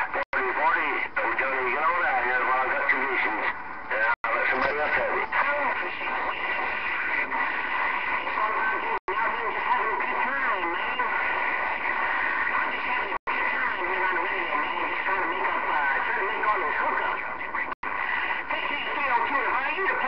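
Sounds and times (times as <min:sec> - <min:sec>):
faint garbled radio voices: 0:00.0 - 0:20.0
radio static: 0:00.0 - 0:20.0.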